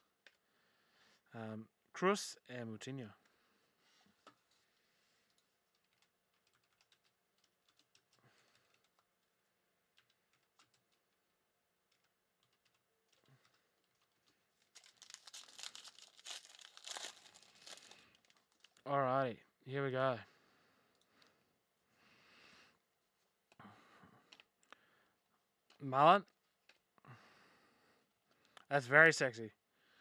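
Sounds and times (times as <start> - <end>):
foil wrapper crinkling and tearing: 14.6 - 18.8.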